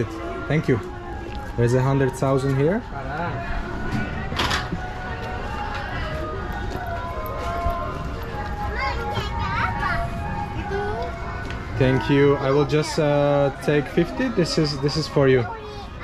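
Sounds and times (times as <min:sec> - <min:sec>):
distant voices: 0:00.0 - 0:16.0
faint music: 0:00.0 - 0:16.0
children's voices: 0:07.3 - 0:13.3, 0:14.0 - 0:16.0.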